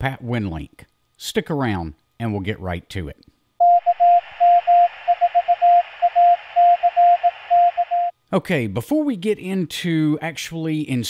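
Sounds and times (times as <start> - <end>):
morse code beeping: 3.6 - 8.1
radio static: 4.2 - 8.1.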